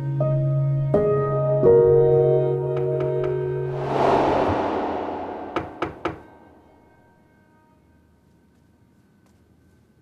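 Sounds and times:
soft whooshing swell: 0:03.7 - 0:06.9.

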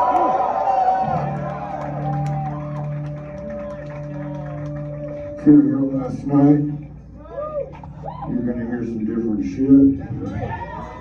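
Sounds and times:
electric guitar sustaining drone: 0:01.0 - 0:07.0.

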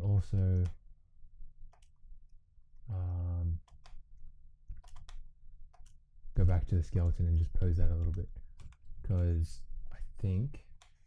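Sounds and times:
computer mouse clicks: 0:01.7 - 0:02.0, 0:03.6 - 0:04.0, 0:04.7 - 0:06.0.

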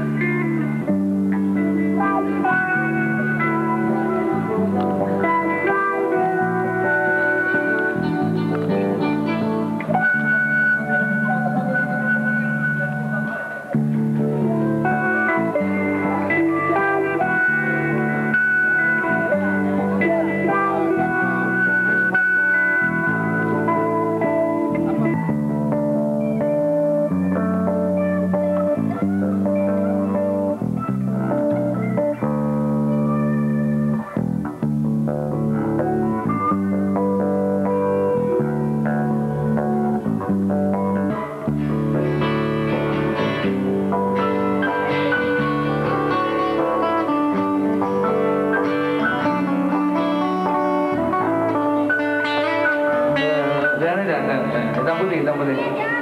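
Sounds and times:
electric bass guitar notes: 0:00.0 - 0:56.0.

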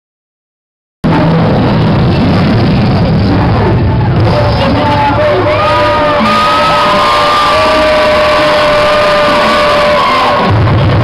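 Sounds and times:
heavy bass beat: 0:01.0 - 0:11.0
loud dance music: 0:01.0 - 0:11.0
crowd whooping and shouting: 0:03.8 - 0:11.0.

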